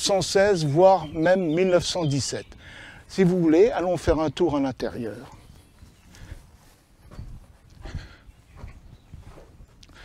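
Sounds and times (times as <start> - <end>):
soft footsteps on dirt: 3.9 - 10.0.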